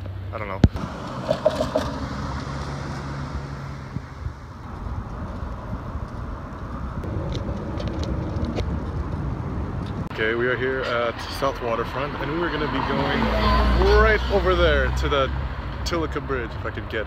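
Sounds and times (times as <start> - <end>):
traffic: 0.0 - 17.0
wind rumble: 0.7 - 10.7
car passing: 0.7 - 16.7.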